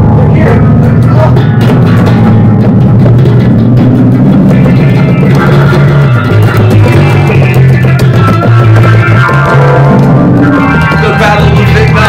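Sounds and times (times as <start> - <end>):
bass guitar: 0.0 - 12.0
drum kit playing: 0.0 - 12.0
electric guitar: 0.0 - 12.0.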